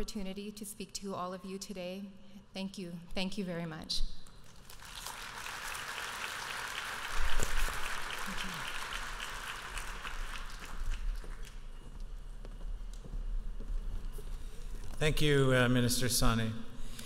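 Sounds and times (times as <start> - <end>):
audience applauding: 4.6 - 11.8.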